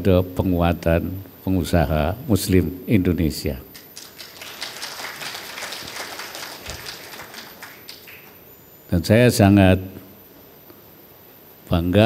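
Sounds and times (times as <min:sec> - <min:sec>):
audience applauding: 0:03.8 - 0:08.5.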